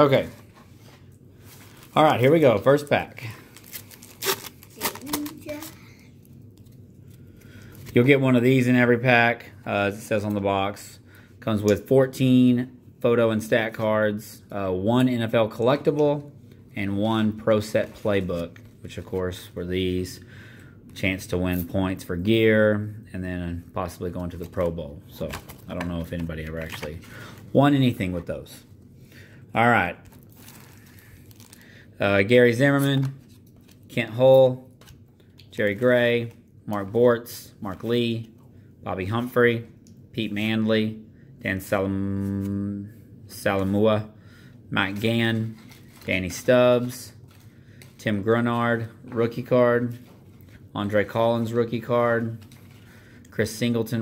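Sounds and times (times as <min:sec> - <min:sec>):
paper wrapper tearing and crinkling: 0:03.5 - 0:05.8, 0:30.0 - 0:31.8, 0:45.0 - 0:48.0
cardboard cards rustling: 0:03.5 - 0:08.2, 0:24.1 - 0:27.9, 0:44.9 - 0:48.2.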